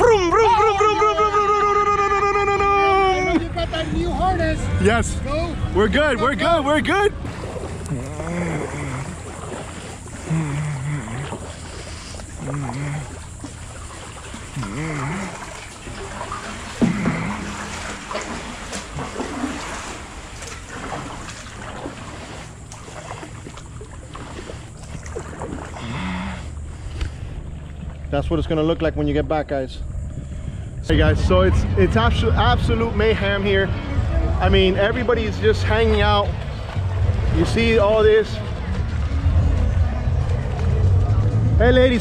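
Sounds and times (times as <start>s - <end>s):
paddle splashing into water: 7.1s - 28.2s
water dripping off paddle: 7.2s - 28.2s.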